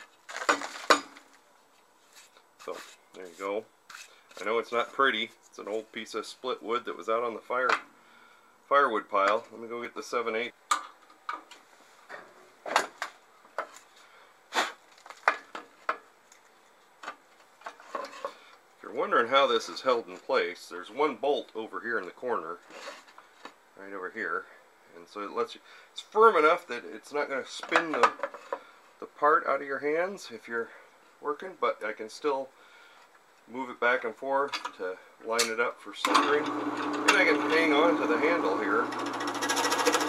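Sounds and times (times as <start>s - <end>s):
knocks and clinks of metal and wood: 0.3s - 1.4s.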